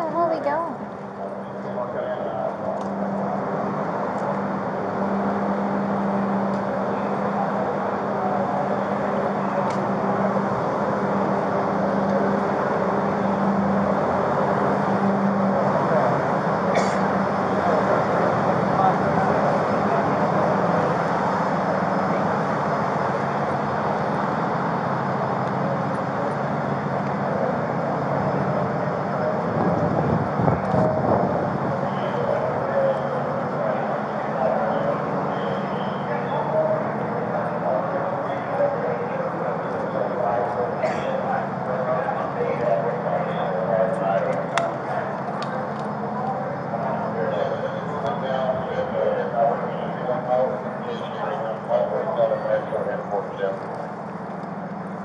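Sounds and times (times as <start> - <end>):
vehicle noise: 0.0 - 55.0
indistinct voices: 25.5 - 54.0.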